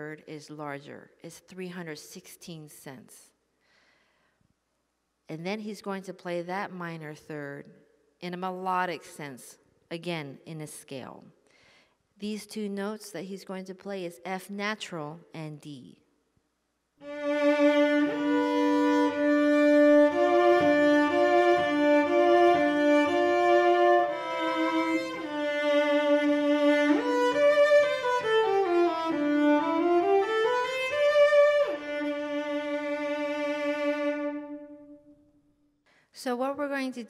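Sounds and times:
bowed cello: 0:17.0 - 0:35.1.

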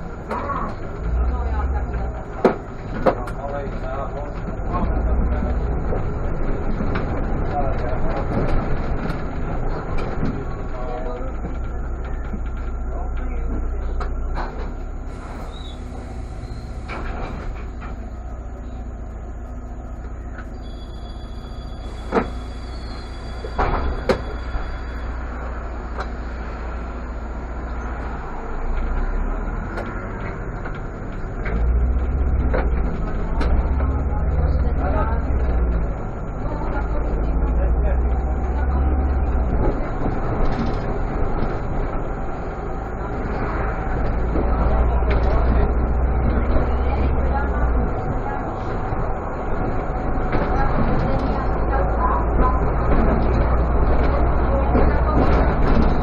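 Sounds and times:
bus engine accelerating: 0:00.0 - 0:56.0
bus engine idling: 0:00.0 - 0:56.0.

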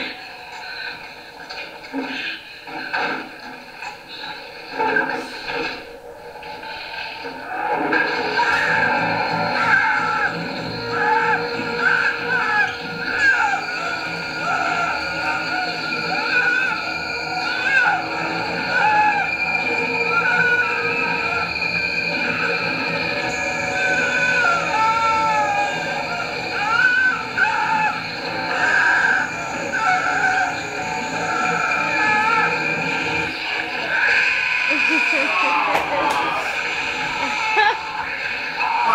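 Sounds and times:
voices: 0:07.2 - 0:38.9.

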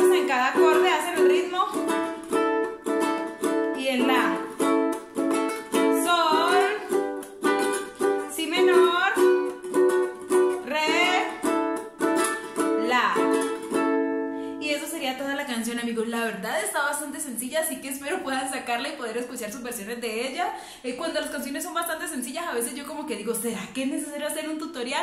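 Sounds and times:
woman singing: 0:00.0 - 0:01.9, 0:03.7 - 0:04.6, 0:05.8 - 0:07.0, 0:08.2 - 0:09.5, 0:10.5 - 0:11.5, 0:12.8 - 0:13.4
ukulele strumming chords: 0:00.0 - 0:14.6.

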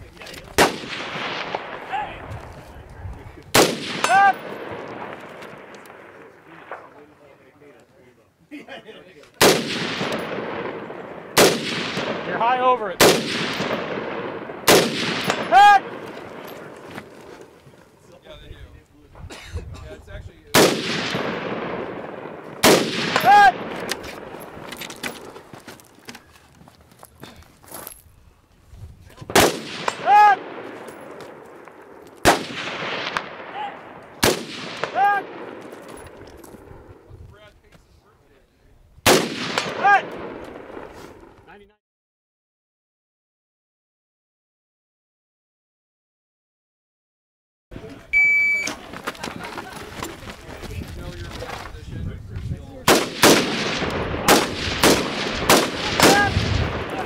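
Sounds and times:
rifle shots with long echo: 0:00.6 - 0:02.3, 0:03.5 - 0:07.4, 0:09.4 - 0:17.5, 0:20.5 - 0:25.4, 0:29.3 - 0:37.0, 0:39.0 - 0:41.3, 0:52.8 - 0:57.0.

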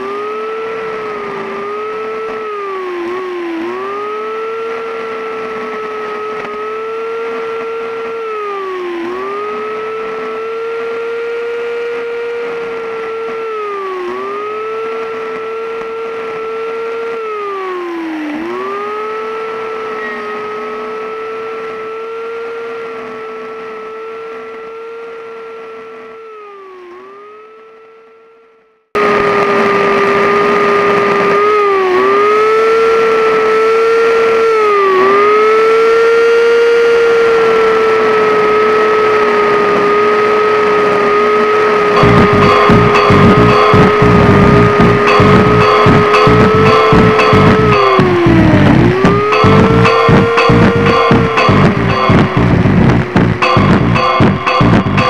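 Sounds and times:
chainsaw cutting wood: 0:00.0 - 0:27.8, 0:29.0 - 0:55.0.

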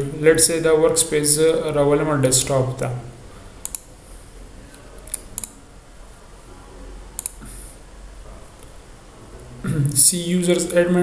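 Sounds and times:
faint low hum: 0:00.0 - 0:11.0
computer mouse clicks: 0:03.6 - 0:03.9, 0:07.2 - 0:07.5.

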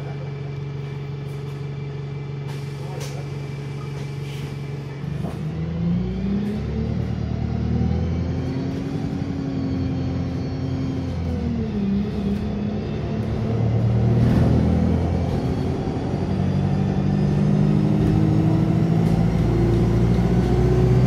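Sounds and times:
bus diesel engine idling and revving: 0:00.0 - 0:21.0.

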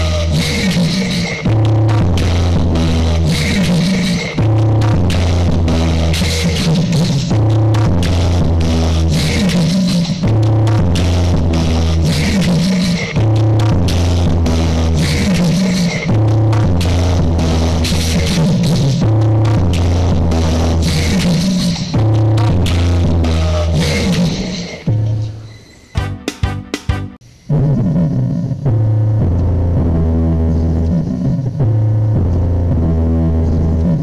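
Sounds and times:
bass-heavy electronic dance music: 0:00.0 - 0:25.4, 0:26.0 - 0:34.0.

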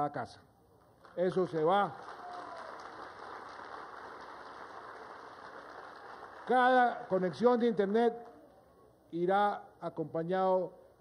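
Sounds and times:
audience applauding: 0:01.0 - 0:08.5.

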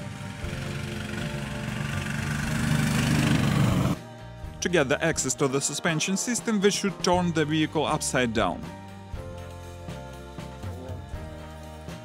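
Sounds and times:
tracked vehicle engine running: 0:00.0 - 0:04.0.

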